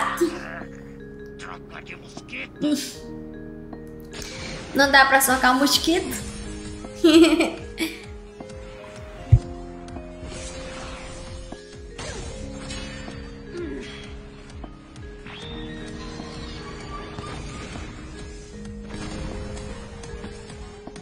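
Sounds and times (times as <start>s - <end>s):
dramatic background music: 0.0s - 21.0s.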